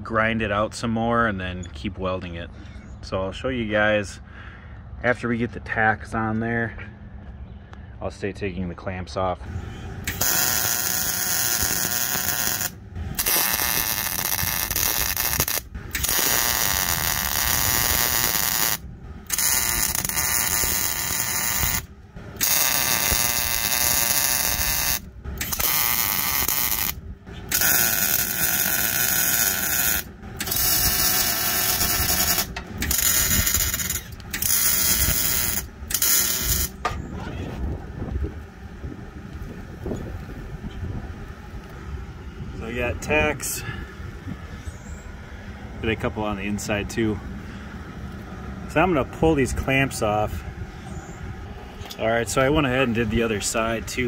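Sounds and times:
mig welding arc crackling: 10.0s - 36.9s.

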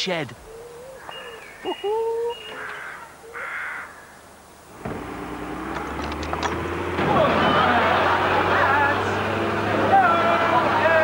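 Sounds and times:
crow-like caws: 2.5s - 4.3s
low engine rumble: 4.6s - 11.0s.

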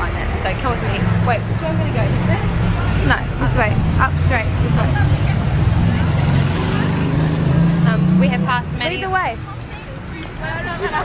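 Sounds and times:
van engine running: 0.0s - 9.5s.

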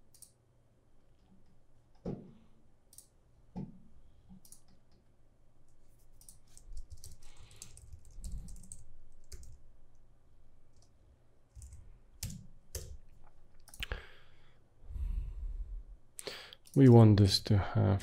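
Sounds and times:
computer keyboard typing: 6.1s - 9.7s, 11.5s - 13.8s.

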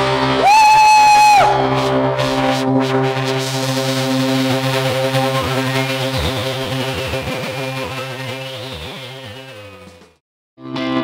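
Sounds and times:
rock band playing a chord: 0.0s - 11.0s.

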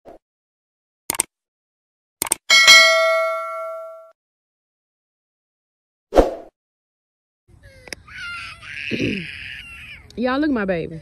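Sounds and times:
quick clicks: 1.1s - 1.3s, 2.2s - 2.4s
bell ding: 2.5s - 4.1s.

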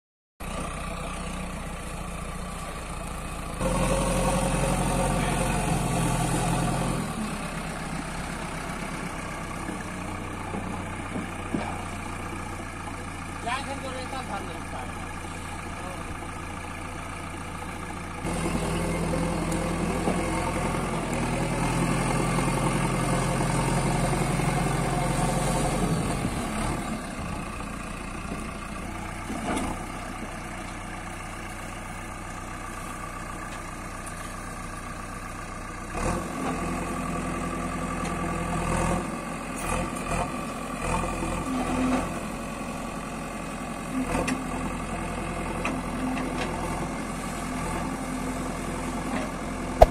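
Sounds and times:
diesel engine running: 0.4s - 49.9s.

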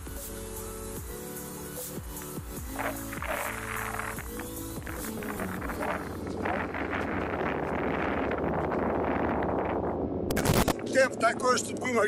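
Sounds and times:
wind buffeting microphone: 4.8s - 12.0s.

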